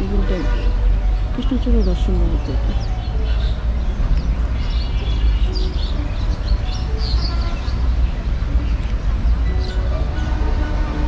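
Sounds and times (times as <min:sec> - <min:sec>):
small birds chirping: 0:00.0 - 0:10.4.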